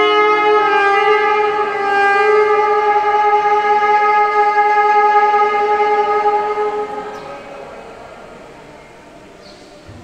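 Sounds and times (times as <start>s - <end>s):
hall echo: 0.0s - 10.0s
saxophone holding long note: 0.0s - 10.0s.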